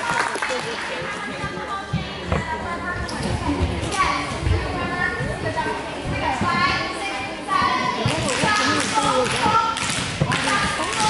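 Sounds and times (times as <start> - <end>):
children chattering: 0.7 - 9.7.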